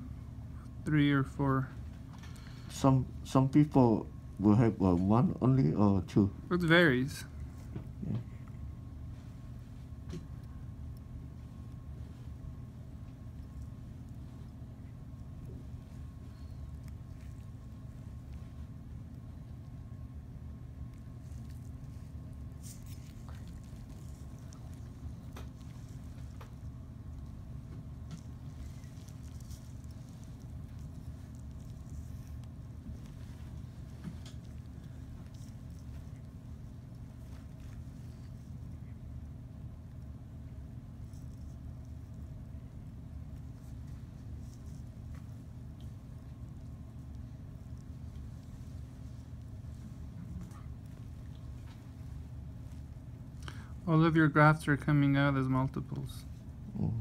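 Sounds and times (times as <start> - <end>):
low background hum: 0.0 - 57.0.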